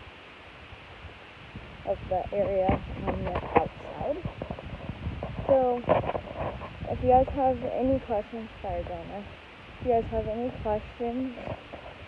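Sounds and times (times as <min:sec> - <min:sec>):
outdoor background hiss: 0:00.0 - 0:12.0
faint low bumps: 0:00.7 - 0:12.0.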